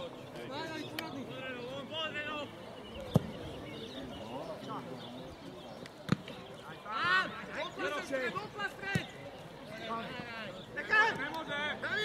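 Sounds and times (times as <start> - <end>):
football being kicked: 3.1 - 3.4.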